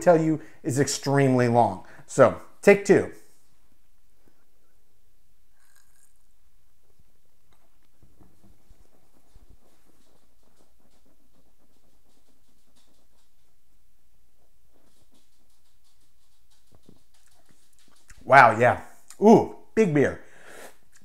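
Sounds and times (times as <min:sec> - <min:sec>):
man sipping beer: 0:05.5 - 0:06.3, 0:20.4 - 0:21.0.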